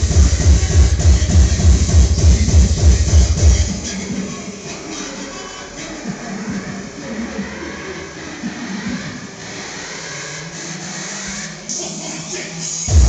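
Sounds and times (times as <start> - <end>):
crowd noise: 0.0 - 13.0
dance music over sound system: 0.0 - 13.0.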